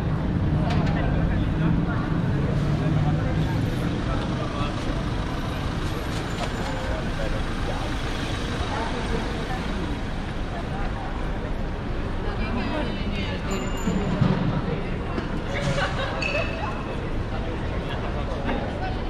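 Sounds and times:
heavy vehicle engine drone: 0.0s - 13.1s
street noise: 0.0s - 19.0s
voices of passersby: 0.0s - 19.0s.

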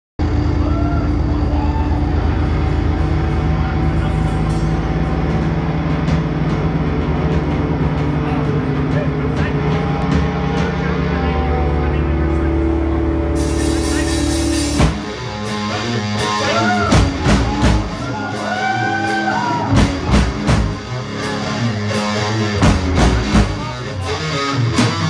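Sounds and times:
electric guitars and bass drone: 0.2s - 25.0s
murmur of crowd voices: 0.2s - 25.0s.

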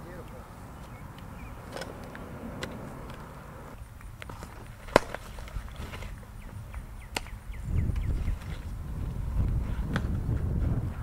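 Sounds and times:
softball impact smack: 4.9s - 5.2s
wind rumble on microphone: 5.5s - 11.0s.

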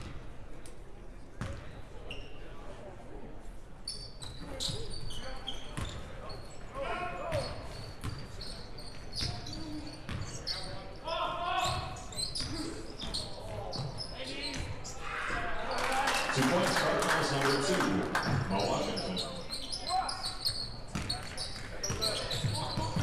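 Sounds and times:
crowd noise: 0.0s - 23.0s
basketball bouncing on court: 1.4s - 1.6s, 7.3s - 8.3s, 8.9s - 9.5s, 10.1s - 10.4s, 20.9s - 23.0s
shoe squeaks: 2.0s - 2.5s, 3.8s - 6.6s, 7.2s - 15.0s, 18.6s - 23.0s.

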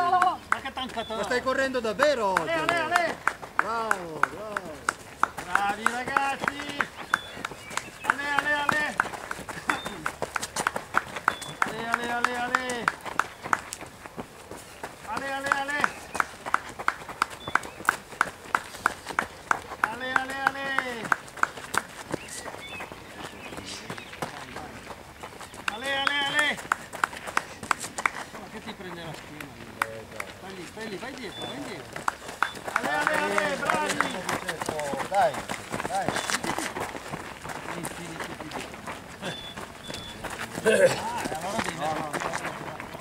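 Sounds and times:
rhythmic sharp slaps: 0.0s - 14.3s, 14.9s - 22.6s, 25.5s - 38.7s.

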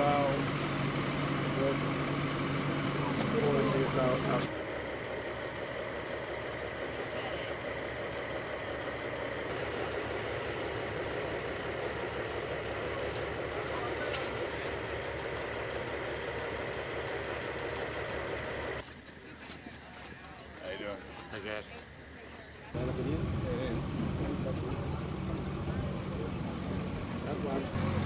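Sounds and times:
vehicle engine idling: 0.0s - 28.0s.

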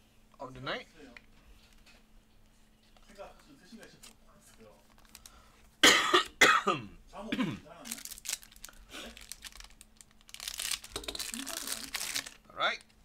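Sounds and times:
foil pack crinkling: 4.0s - 5.5s, 7.8s - 13.0s
man coughing: 5.8s - 7.7s.

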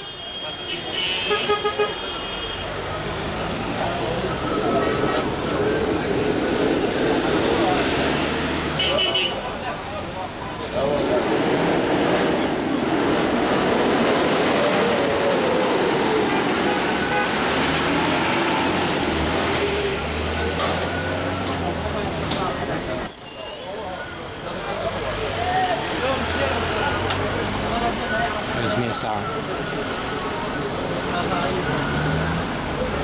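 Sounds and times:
cars passing close by: 2.6s - 23.0s, 24.4s - 33.0s
jumble of voices: 2.7s - 17.1s.

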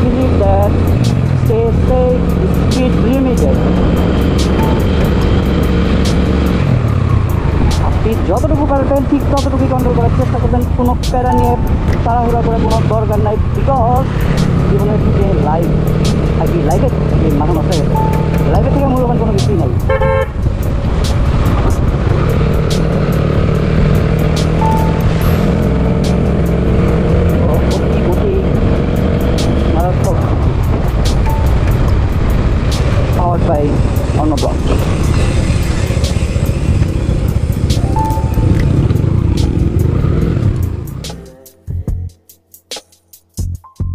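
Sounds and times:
motorcycle engine running: 0.0s - 41.3s
motorcycle horn toots: 19.8s - 20.5s
wind noise on microphone: 28.2s - 40.8s.

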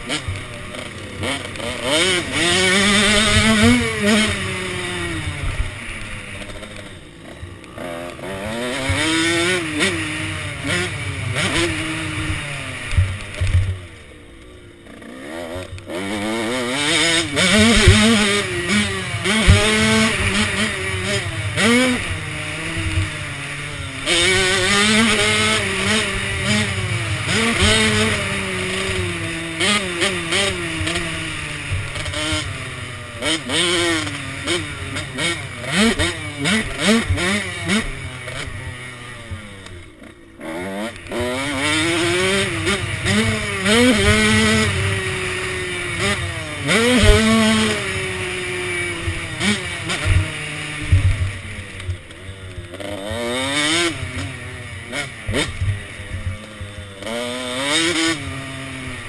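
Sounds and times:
dirt bike engine revving: 0.0s - 59.0s.

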